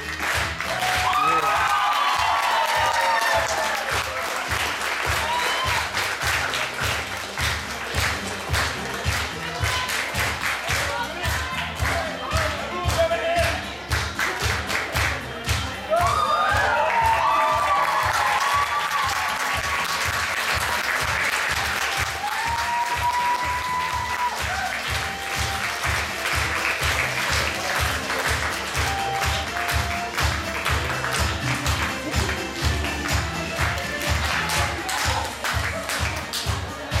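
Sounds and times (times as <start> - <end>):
audience applauding: 0.0 - 37.0
music with a steady beat: 4.4 - 37.0.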